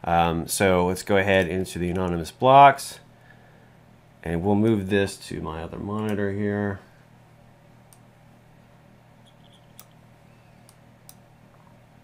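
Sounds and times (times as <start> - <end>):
steady low hum: 0.0 - 12.0
faint high squeaks: 9.2 - 10.7.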